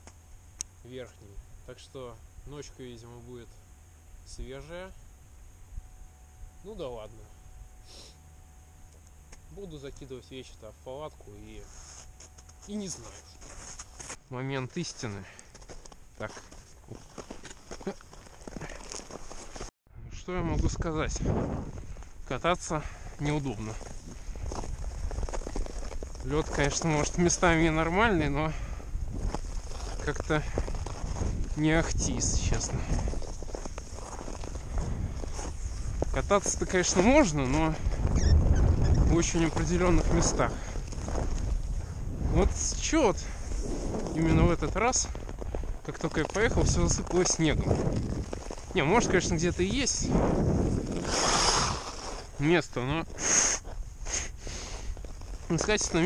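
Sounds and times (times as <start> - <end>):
wind rumbling on microphone: 19.9 - 22.3, 23.0 - 52.4
ice skates scraping on ice: 50.8 - 52.3.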